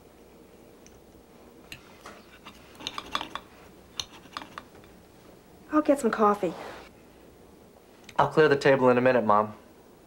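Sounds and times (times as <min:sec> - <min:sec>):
cutlery and dishes clinking: 0:02.1 - 0:05.0.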